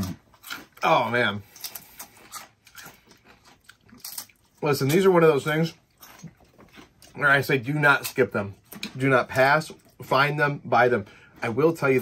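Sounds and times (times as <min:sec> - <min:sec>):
potato chips being chewed: 0:00.0 - 0:10.1.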